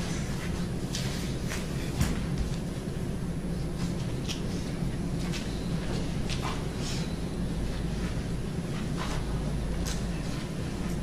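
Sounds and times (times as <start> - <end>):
ventilation hum: 0.0 - 11.0.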